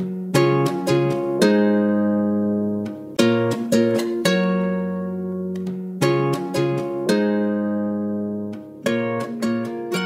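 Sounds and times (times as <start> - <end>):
plucked guitar-like chord: 0.0 - 10.0.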